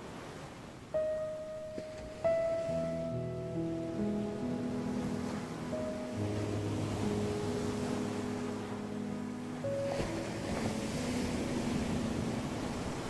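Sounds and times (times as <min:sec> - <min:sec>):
ocean surf: 0:00.0 - 0:13.0
soft instrumental music: 0:00.9 - 0:13.0.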